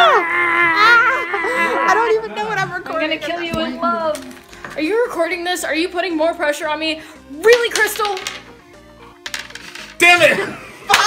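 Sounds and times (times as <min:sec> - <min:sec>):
die clattering on wooden table: 0:07.5 - 0:08.5, 0:09.2 - 0:10.0.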